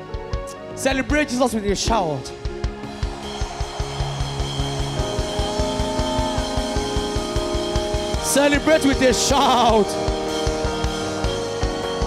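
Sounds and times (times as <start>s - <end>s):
sustained keyboard chords: 0.0s - 12.0s
fast drum beat: 1.1s - 12.0s.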